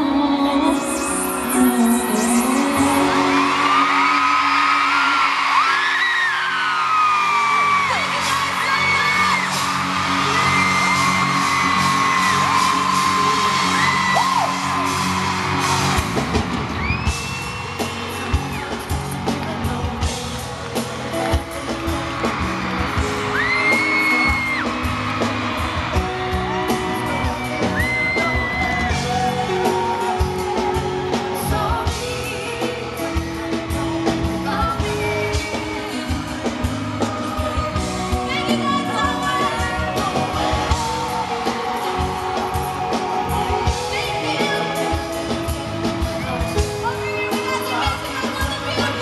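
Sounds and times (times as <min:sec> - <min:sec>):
woman singing through pa: 0:00.0 - 0:05.1, 0:28.0 - 0:45.5
fans screaming and whooping: 0:00.0 - 0:49.0
live pop band: 0:00.0 - 0:49.0.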